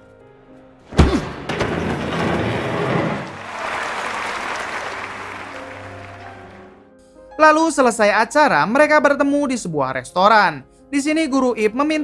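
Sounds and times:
background music: 0.0 - 12.0
audience applauding: 3.1 - 6.8.

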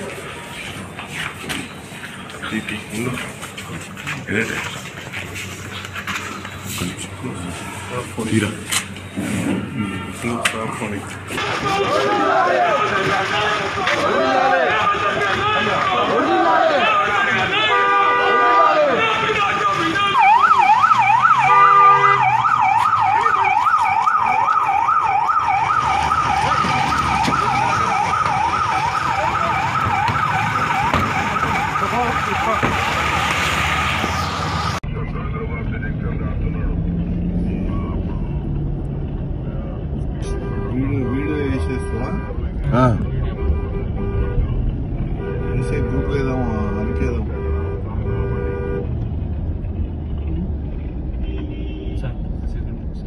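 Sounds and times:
road traffic rumble: 0.0 - 53.0
police siren yelping: 18.5 - 33.3.

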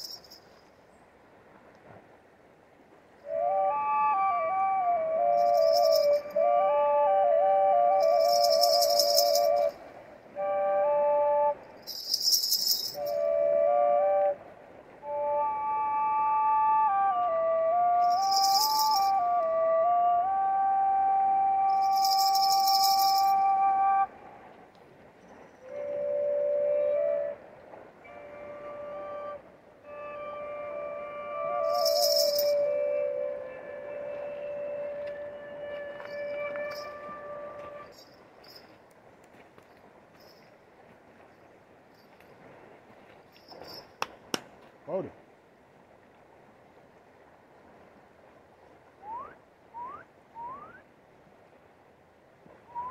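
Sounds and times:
ankle bells shaken: 0.0 - 0.7, 5.3 - 6.4, 7.9 - 9.8, 11.6 - 13.3, 18.0 - 19.2, 21.7 - 23.6, 31.6 - 32.9, 35.8 - 38.9, 39.6 - 42.6, 43.2 - 44.1
double flute drone and melody: 3.2 - 24.5, 25.2 - 38.6, 52.7 - 52.9
basket rattle shaken: 8.1 - 9.5, 11.9 - 13.1.

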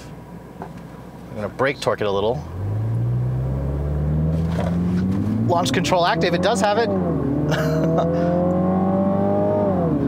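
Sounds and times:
car engine at raised revs: 2.3 - 10.0.

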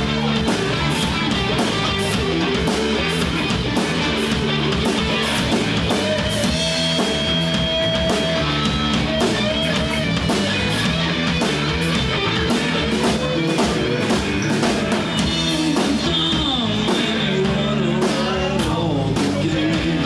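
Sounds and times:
bending guitar lines: 0.0 - 20.0
rock band playing: 0.0 - 20.0.

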